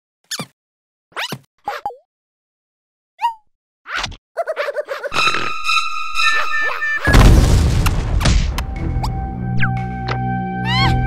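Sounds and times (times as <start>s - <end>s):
squeaky chirp: 0.3s - 0.6s, 4.4s - 7.2s.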